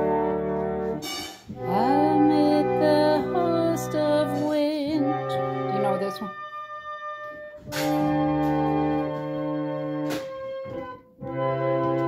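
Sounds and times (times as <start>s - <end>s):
reed organ chords: 0.0s - 12.0s.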